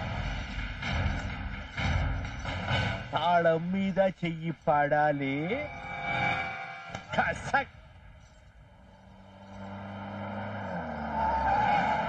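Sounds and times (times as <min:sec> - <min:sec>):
car engine approaching: 0:07.9 - 0:12.0
tyre squeal: 0:08.2 - 0:12.0.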